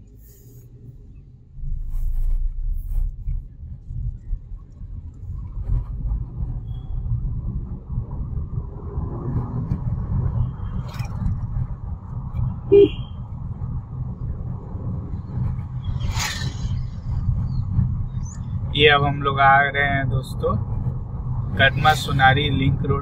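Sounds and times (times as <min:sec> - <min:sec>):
car road and engine rumble: 0:00.0 - 0:23.0.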